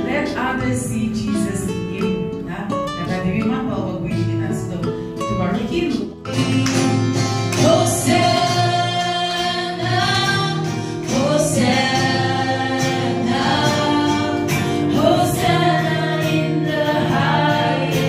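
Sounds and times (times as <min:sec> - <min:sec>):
acoustic guitar: 0:00.0 - 0:18.0
women singing together: 0:06.4 - 0:18.0.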